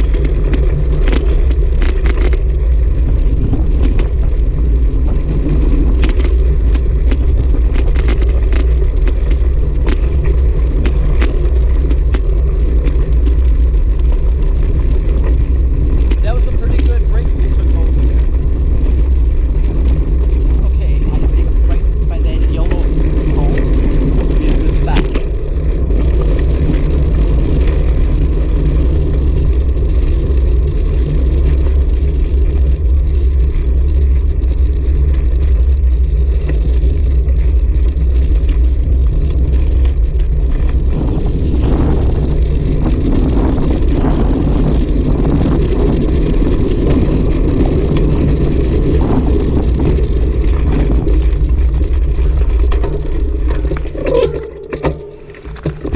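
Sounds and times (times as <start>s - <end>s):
bike tyres rumbling on path: 0.0s - 55.9s
wind buffeting microphone: 0.0s - 55.9s.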